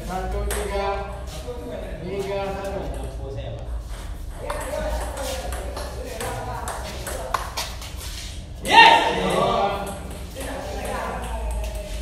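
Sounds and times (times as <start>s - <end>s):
ping pong ball hits: 0.4s - 0.9s, 4.3s - 7.6s, 9.2s - 12.0s.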